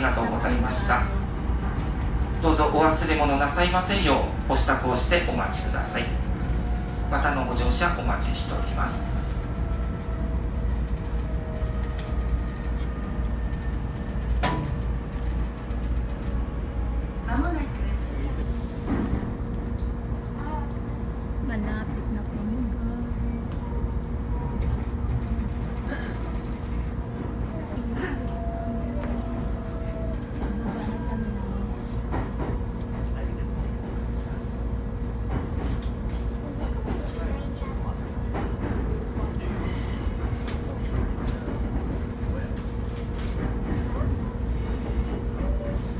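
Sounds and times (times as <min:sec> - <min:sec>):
train wheels rumbling on rails: 0:00.0 - 0:45.9
constant hum: 0:07.7 - 0:33.9.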